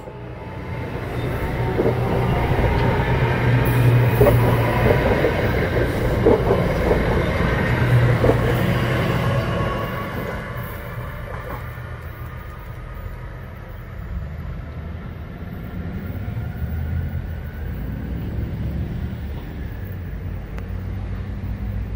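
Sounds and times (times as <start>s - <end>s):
electric train rumbling: 0.0s - 21.9s.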